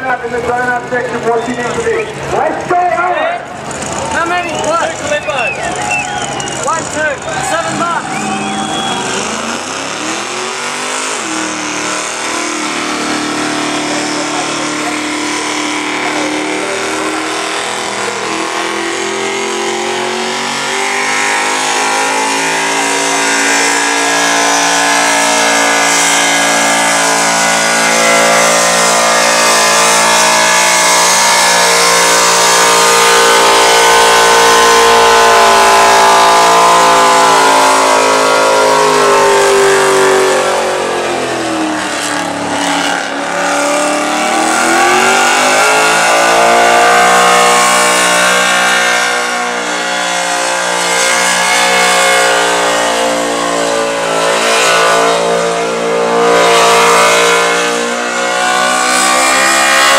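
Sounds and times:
engine at high revs: 0.0s - 59.9s.

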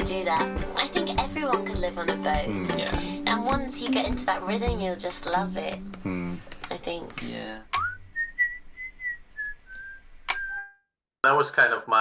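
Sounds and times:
person whistling slow tune: 7.8s - 10.8s.

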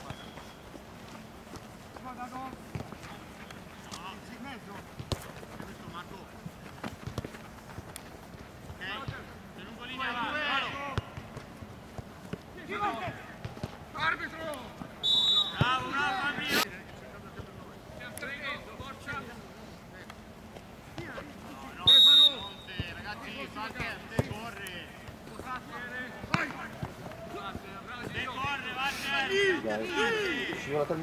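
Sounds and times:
players shouting: 8.8s - 11.2s, 12.5s - 16.7s, 21.2s - 31.0s
referee's whistle blast: 15.0s - 15.8s, 21.8s - 22.8s.

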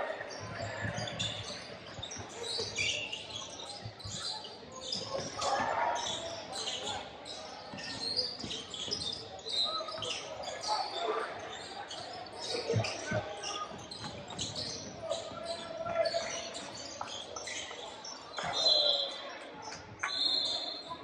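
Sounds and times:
sneakers squeaking: 0.2s - 21.0s.

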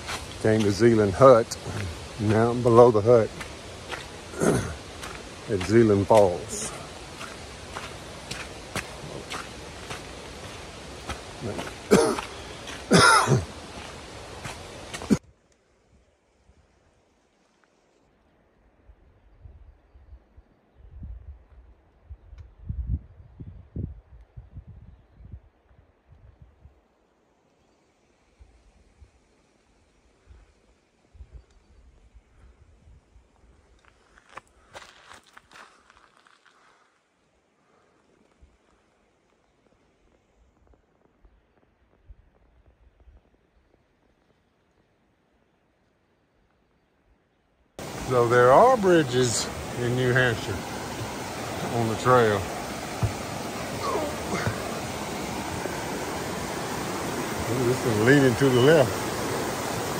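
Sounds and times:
footsteps on forest trail: 0.0s - 15.2s, 33.4s - 37.0s, 47.8s - 59.9s.

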